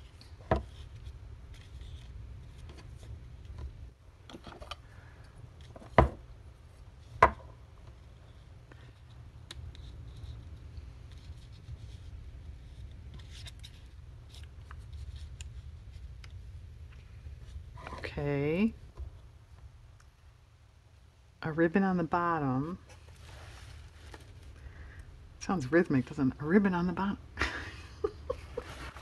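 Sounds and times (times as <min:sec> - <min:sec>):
low steady hum: 0:00.0 - 0:29.0
paper rustling: 0:22.9 - 0:24.6, 0:28.5 - 0:29.0.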